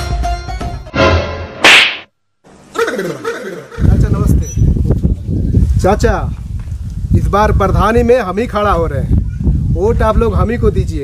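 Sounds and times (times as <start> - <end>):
background music: 0.0 - 1.6
outdoor sound: 0.0 - 7.2
whip crack: 1.6 - 2.1.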